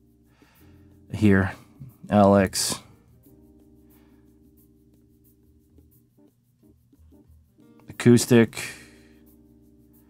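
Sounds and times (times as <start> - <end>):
faint background music chord: 0.0 - 10.0.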